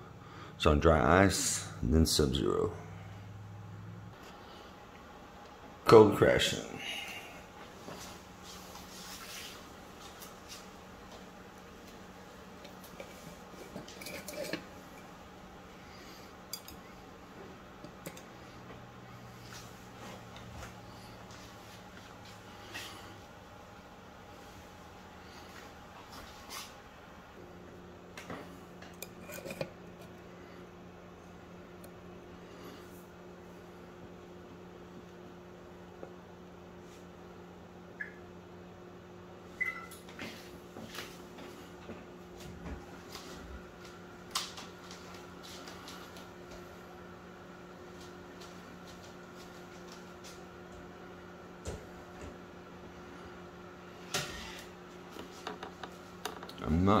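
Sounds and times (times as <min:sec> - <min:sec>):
low steady hum: 0:00.0 - 0:57.0.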